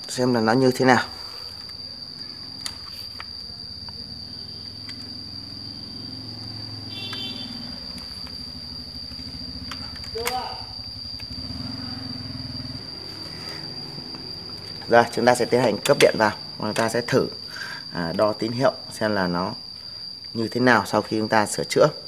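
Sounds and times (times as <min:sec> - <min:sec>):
fan motor humming: 0:01.0 - 0:19.0.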